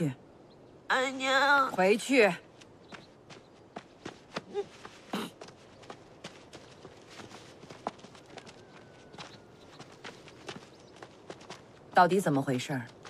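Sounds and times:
footsteps of people walking: 2.5 - 13.0.

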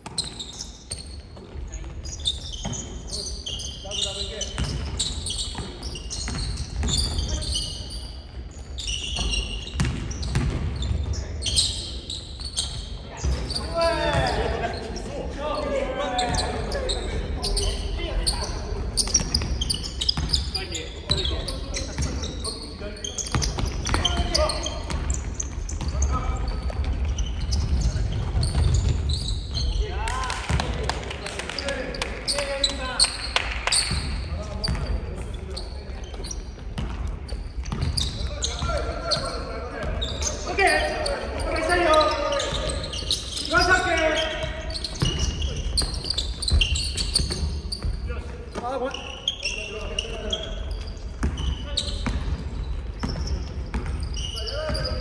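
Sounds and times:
basketball bouncing on court: 4.4 - 7.6, 8.4 - 11.2, 18.9 - 22.3, 23.2 - 29.9, 30.5 - 30.9, 33.7 - 35.3, 36.6 - 40.5, 44.4 - 48.6, 51.1 - 55.0
players calling out: 10.8 - 30.8.

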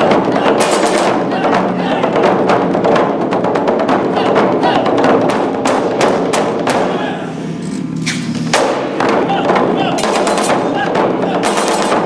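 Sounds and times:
taiko drums struck with sticks: 0.0 - 7.2, 8.5 - 12.0.

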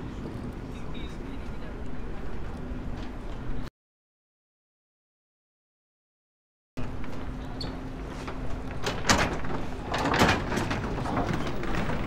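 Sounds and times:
outdoor background noise: 0.0 - 3.7, 6.8 - 12.0.

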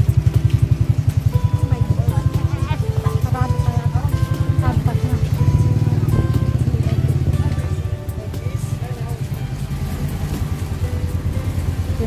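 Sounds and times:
background music: 0.0 - 12.0
motorcycle engine idling: 0.0 - 12.0.

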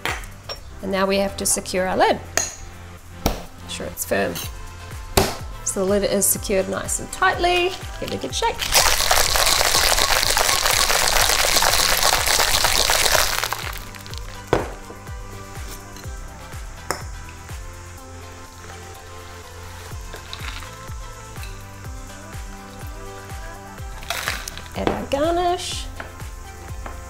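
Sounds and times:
ice rattling in cocktail shaker: 8.6 - 14.4, 20.2 - 20.8, 24.0 - 24.7.

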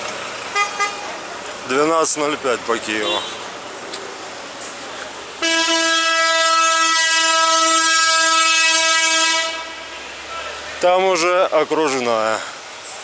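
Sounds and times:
vehicle horn blast: 0.5 - 1.1, 3.0 - 3.5, 5.4 - 10.0.

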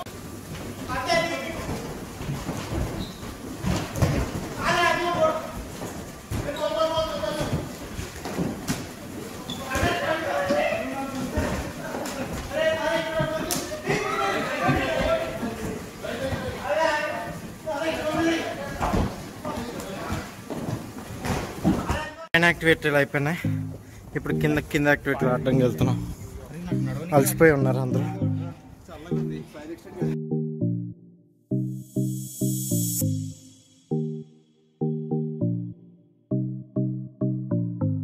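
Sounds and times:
people shouting: 13.8 - 15.3.

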